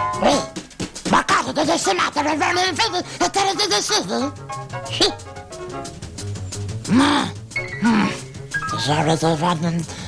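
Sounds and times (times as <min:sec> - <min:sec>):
background music: 0:00.0 - 0:10.0
cartoon gibberish voice: 0:01.1 - 0:04.3.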